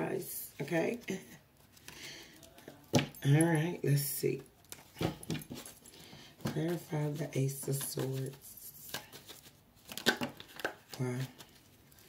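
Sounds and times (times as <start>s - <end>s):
cards snapping and tapping: 9.9s - 10.9s.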